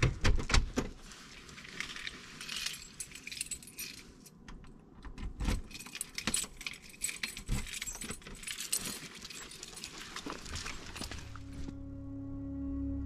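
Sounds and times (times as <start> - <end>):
keys jangling at door lock: 1.8 - 4.4, 5.3 - 11.4.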